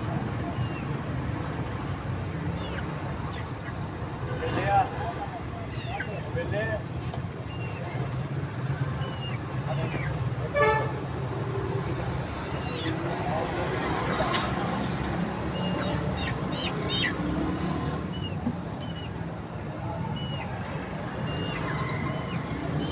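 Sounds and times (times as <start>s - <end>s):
street traffic rumbling: 0.0s - 22.9s
vehicle horn toot: 10.5s - 11.0s
sharp click: 14.3s - 14.6s
bird chirps: 21.2s - 22.9s.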